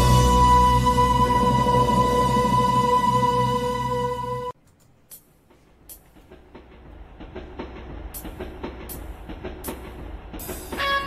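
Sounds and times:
musical instruments: 0.0 - 4.6
train wheels clicking over rail joints: 5.2 - 11.0
low train rumble: 5.5 - 11.0.

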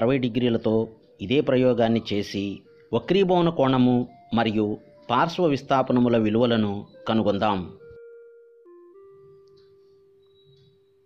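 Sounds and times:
soft electronic bell-like note: 1.0 - 11.0.

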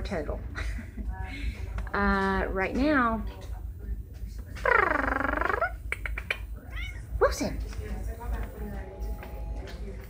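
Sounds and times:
cat meowing: 6.6 - 7.1.

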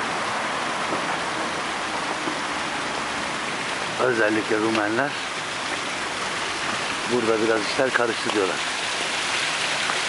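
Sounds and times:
water splashing in a fountain: 0.0 - 10.0.

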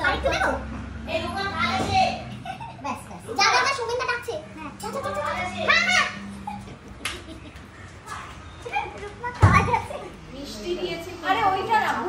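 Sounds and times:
women chattering and squealing: 0.0 - 12.0.

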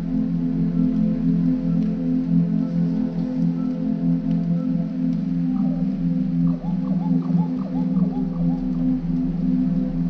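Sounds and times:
low droning pad: 0.0 - 10.0.

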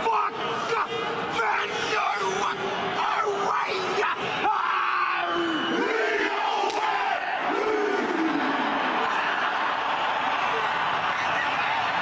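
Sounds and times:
stadium crowd noise: 0.0 - 12.0
team chanting and shouting: 0.0 - 12.0.

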